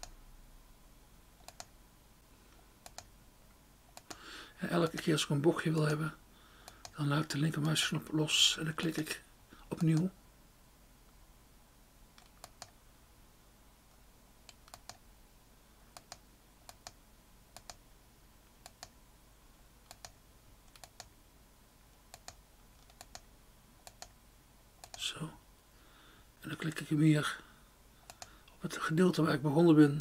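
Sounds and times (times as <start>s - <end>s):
faint hum: 0.0s - 30.0s
computer mouse button clicking: 1.4s - 1.7s, 2.8s - 3.1s, 14.5s - 15.0s, 16.0s - 17.0s, 17.6s - 17.8s, 18.6s - 18.9s, 19.9s - 21.1s, 22.1s - 23.2s, 23.8s - 24.1s, 24.8s - 25.0s, 28.1s - 28.3s.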